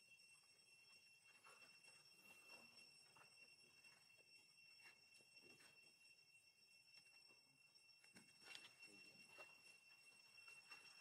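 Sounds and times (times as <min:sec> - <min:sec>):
steady high-pitched tones: 0:00.0 - 0:11.0.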